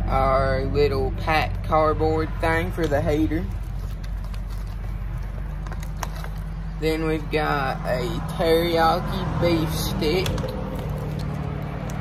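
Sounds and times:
plastic pouches rustling: 0:02.8 - 0:06.8, 0:10.2 - 0:12.0.

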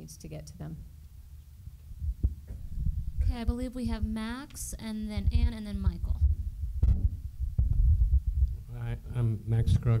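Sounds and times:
microphone handling thumps: 0:01.9 - 0:04.3, 0:05.1 - 0:08.7.

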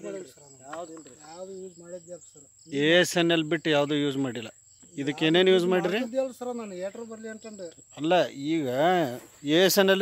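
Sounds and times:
high-pitched insect trill: 0:00.0 - 0:10.0
men talking: 0:00.0 - 0:10.0.

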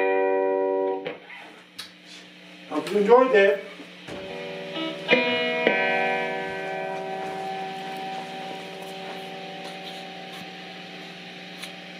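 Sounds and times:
electric guitar strings ringing: 0:00.0 - 0:01.2, 0:04.1 - 0:11.6
low amplifier hum: 0:00.0 - 0:11.9.

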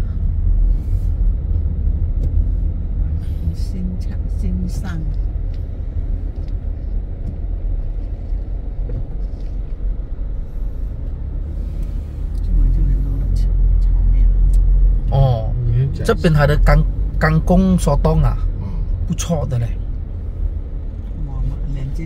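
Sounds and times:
car rumble from inside cabin: 0:00.0 - 0:22.0.

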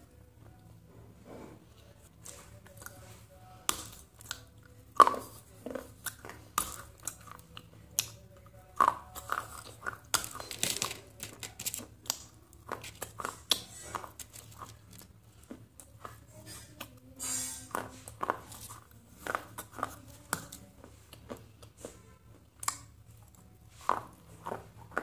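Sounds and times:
crunching and chewing: 0:02.0 - 0:25.0.

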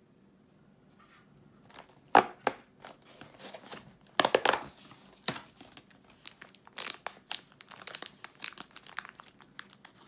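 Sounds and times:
foil snack wrapper crinkling: 0:02.8 - 0:10.0.

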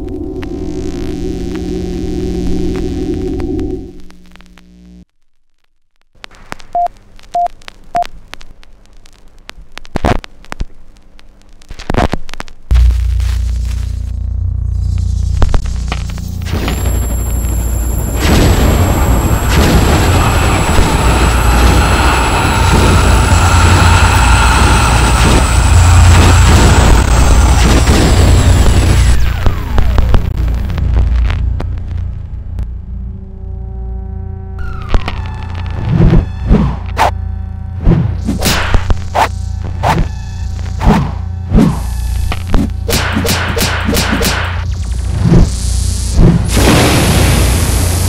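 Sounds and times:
loud low hum: 0:00.0 - 0:05.1, 0:12.5 - 0:48.0
old film soundtrack crackle: 0:00.0 - 0:48.0
thin high whines: 0:12.7 - 0:30.2.

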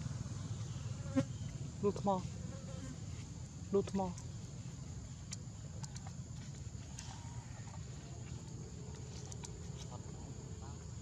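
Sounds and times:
steady low buzz: 0:00.0 - 0:05.7.

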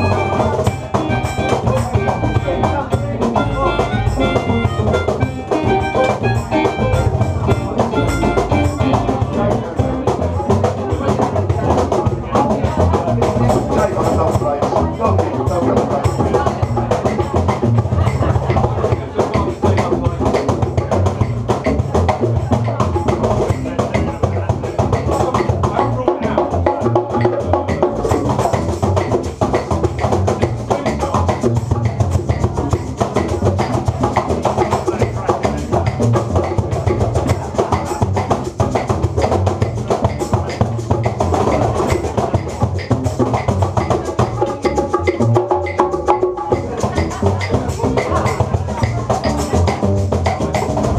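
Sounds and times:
violin: 0:00.0 - 0:25.4
hand percussion: 0:00.0 - 0:50.9
upright double bass: 0:00.0 - 0:50.9.

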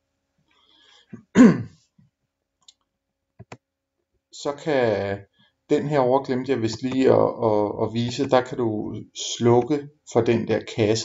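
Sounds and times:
man clearing his throat: 0:01.2 - 0:01.8.

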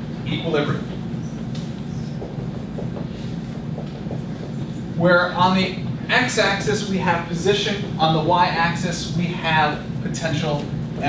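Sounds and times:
low room hum: 0:00.0 - 0:11.0
marker writing on whiteboard: 0:01.2 - 0:05.0.

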